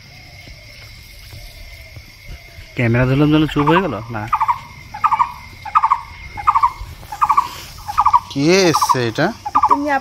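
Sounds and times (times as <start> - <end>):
bird calling: 0.0 - 10.0
bird cry rising and falling: 2.4 - 10.0.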